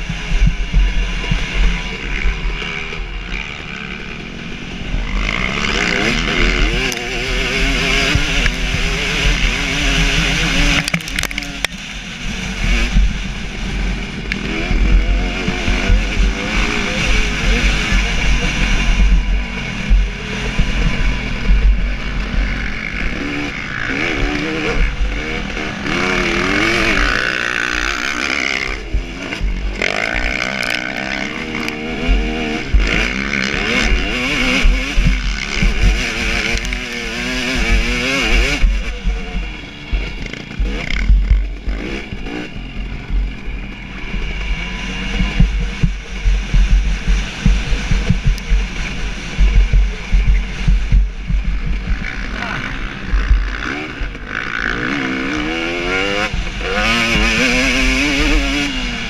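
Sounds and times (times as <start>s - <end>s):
motorcycle engine revving: 0.0s - 59.0s
wind rumble on microphone: 0.0s - 59.0s.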